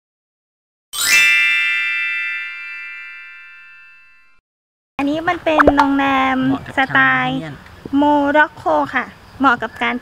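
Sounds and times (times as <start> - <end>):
bright bell-like chime: 1.0 - 4.4.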